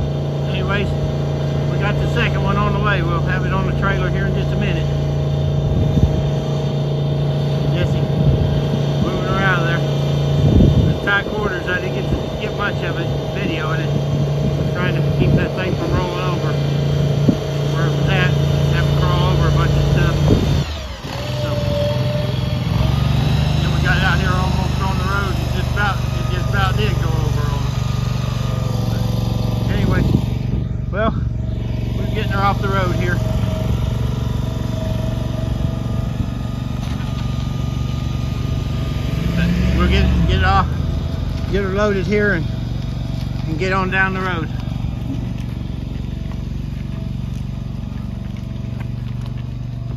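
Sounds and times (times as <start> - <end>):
small engine running: 0.0 - 49.9
vehicle engine running: 0.0 - 49.9.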